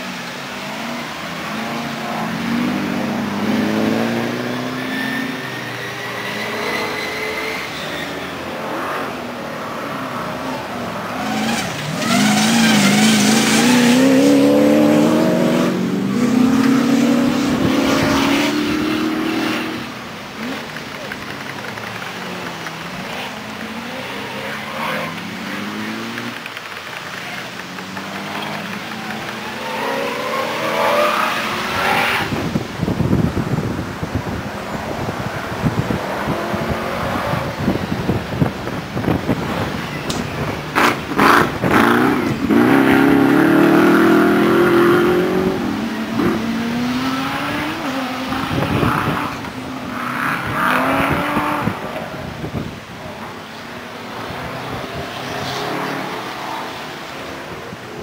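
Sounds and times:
engines revving hard: 0.0 - 34.4, 35.0 - 53.0.

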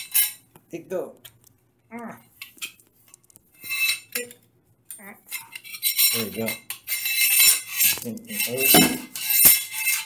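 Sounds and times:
metal bar scraping on tile: 0.0 - 0.4, 2.4 - 4.4, 5.2 - 10.0.

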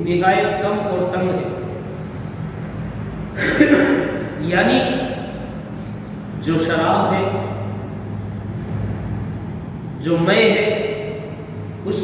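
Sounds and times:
constant background noise: 0.0 - 12.0
steady low hum: 0.0 - 12.0.

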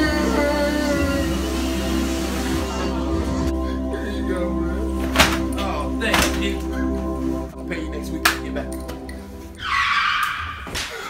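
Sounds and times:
background music: 0.0 - 11.0
tire screech sound effect: 9.6 - 11.0.

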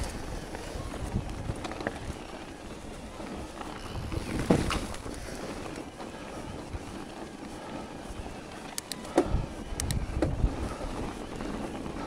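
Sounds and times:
bike knocking and rattling: 0.0 - 12.0
wind and tyre noise: 0.0 - 12.0
quick clicks: 8.7 - 9.1, 9.7 - 10.0.

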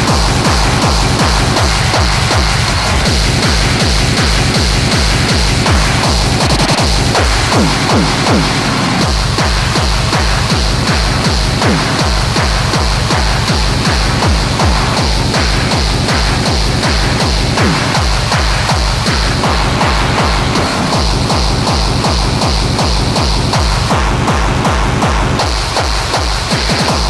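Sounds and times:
hard techno music: 0.0 - 27.0
hi-hat and percussion: 0.0 - 27.0
pounding kick drum: 0.0 - 27.0.

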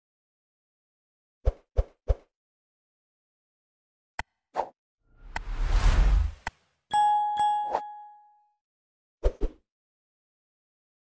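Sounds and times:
whoosh: 5.1 - 6.5.

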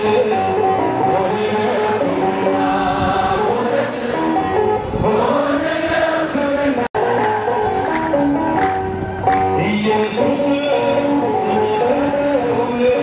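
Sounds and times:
choir singing a hymn: 1.1 - 6.9.

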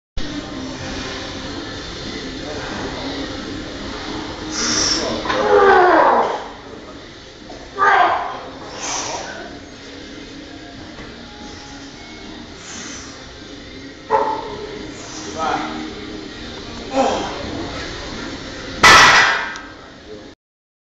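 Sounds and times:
sharp hiss of breath: 4.5 - 5.2, 8.7 - 9.3, 12.6 - 13.2
man grunting: 16.9 - 17.5.

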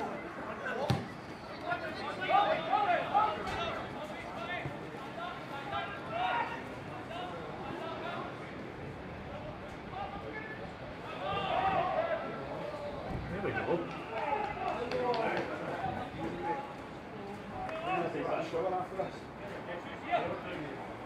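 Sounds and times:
men calling and shouting: 0.0 - 21.0
outdoor background noise: 0.0 - 21.0.

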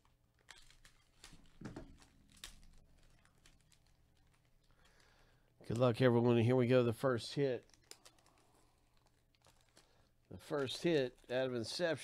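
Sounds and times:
foil card pack crinkling: 0.0 - 6.1, 7.0 - 12.0.

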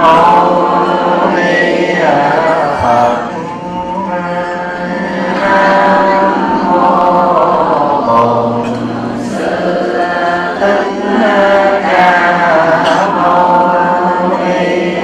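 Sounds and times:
group of voices chanting: 0.0 - 15.0.

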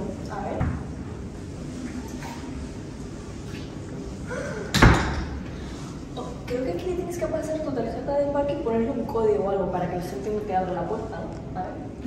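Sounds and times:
door slamming shut: 4.7 - 5.3.

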